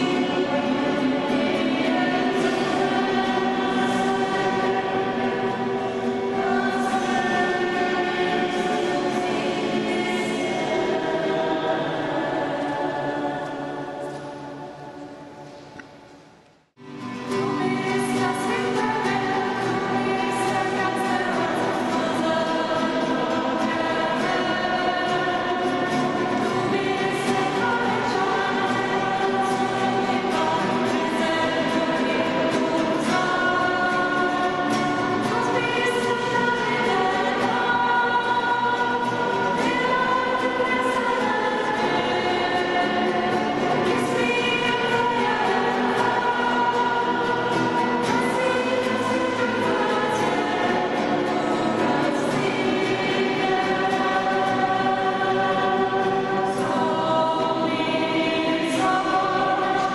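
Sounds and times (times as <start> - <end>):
group singing a worship song: 0.0 - 15.4, 16.9 - 59.9
acoustic guitars: 0.0 - 59.9.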